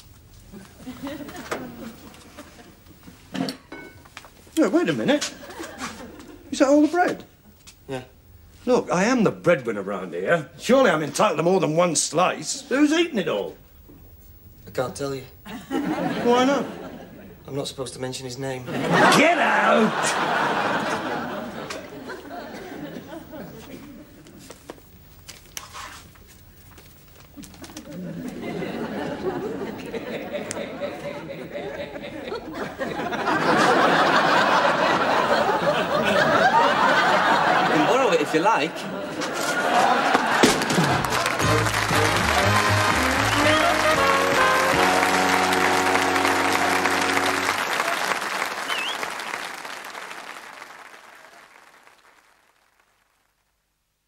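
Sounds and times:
studio audience laughing: 0:00.8 - 0:02.8, 0:15.5 - 0:17.4, 0:18.7 - 0:24.1, 0:27.8 - 0:48.8
studio audience applauding: 0:39.8 - 0:53.4
music sting: 0:41.4 - 0:47.6.

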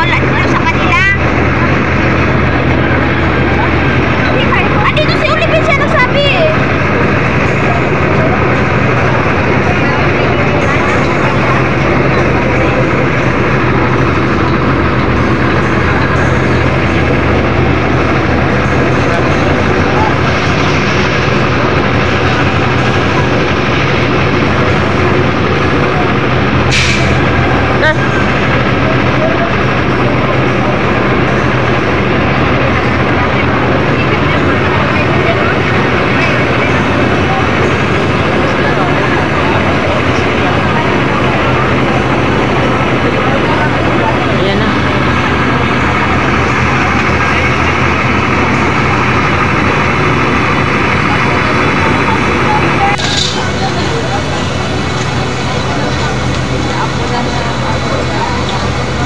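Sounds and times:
fire truck engine running: 0:00.0 - 0:59.0
short sharp hiss: 0:26.7 - 0:27.2.

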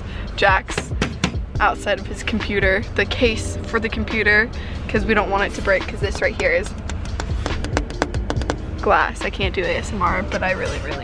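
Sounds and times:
fingernails tapping on glass: 0:06.1 - 0:08.7.

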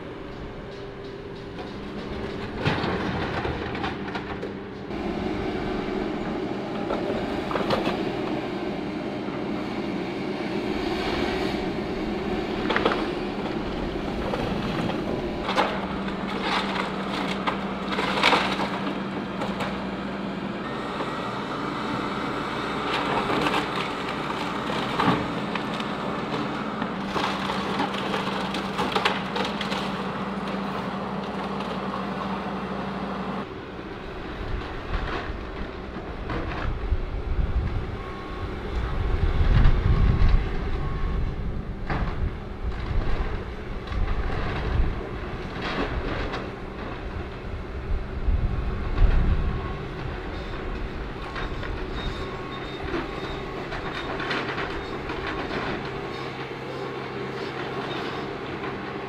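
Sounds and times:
excavator running under load: 0:00.0 - 0:59.0.

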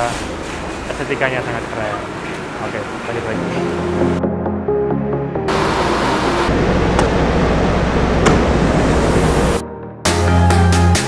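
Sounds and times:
loud steady rushing noise: 0:00.0 - 0:04.2, 0:05.4 - 0:09.6.

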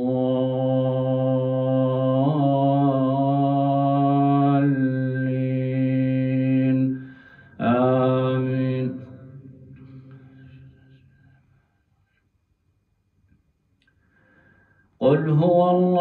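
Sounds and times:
man reciting melodically: 0:00.0 - 0:10.3, 0:15.0 - 0:16.0.

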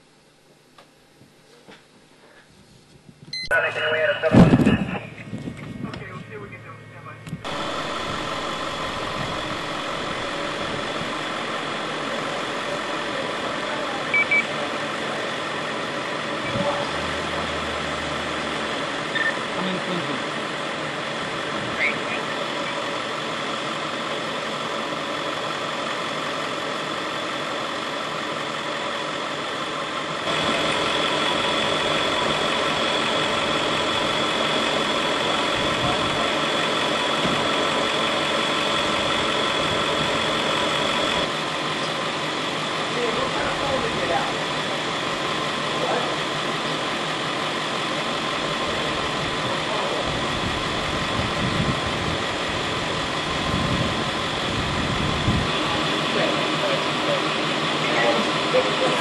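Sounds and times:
steady tones: 0:03.4 - 0:59.0
vehicle engines idling: 0:03.4 - 0:59.0
faint voices: 0:03.5 - 0:07.3, 0:21.6 - 0:22.9, 0:55.5 - 0:59.0.

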